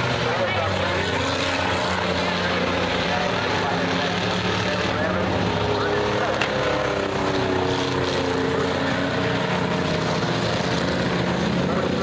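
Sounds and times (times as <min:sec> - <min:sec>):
spectators' voices: 0:00.0 - 0:09.7
many car engines racing: 0:00.0 - 0:12.0.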